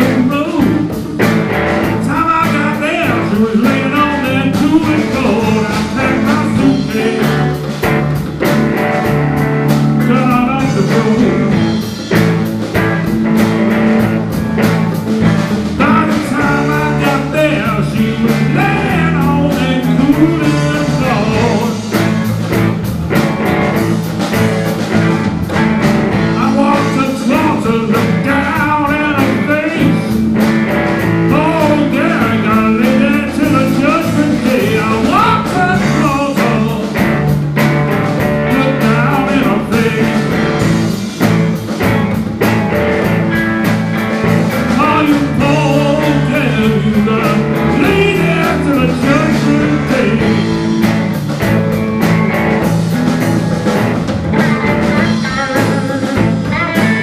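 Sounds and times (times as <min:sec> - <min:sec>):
electric blues band playing: 0:00.0 - 0:57.0.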